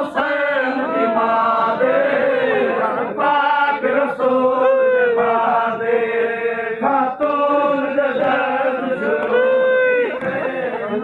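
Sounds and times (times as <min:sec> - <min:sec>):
vocal chanting in held notes: 0:00.0 - 0:11.0.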